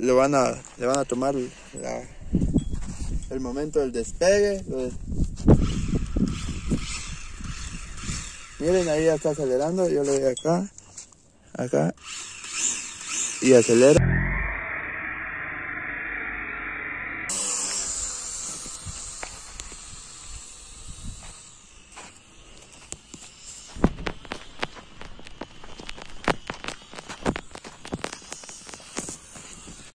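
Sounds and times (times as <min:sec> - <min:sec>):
toy drone propellers whirring: 0:05.5 - 0:09.8, 0:12.0 - 0:14.0, 0:17.1 - 0:29.9.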